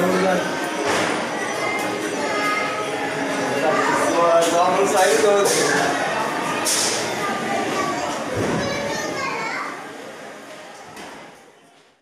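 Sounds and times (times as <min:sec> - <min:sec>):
children chattering and calling: 0:00.0 - 0:11.8.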